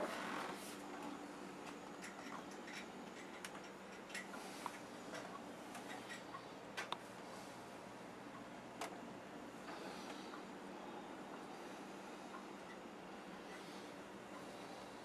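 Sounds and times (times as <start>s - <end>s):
refrigerator low hum: 0.0s - 15.0s.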